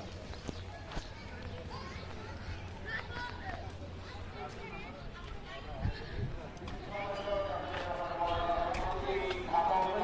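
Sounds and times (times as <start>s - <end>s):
distant voices talking: 0.0s - 10.0s.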